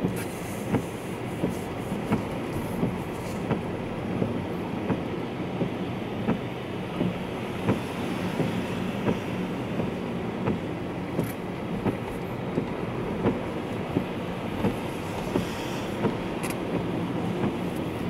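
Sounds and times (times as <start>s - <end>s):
engine and tyre rumble: 0.0s - 18.0s.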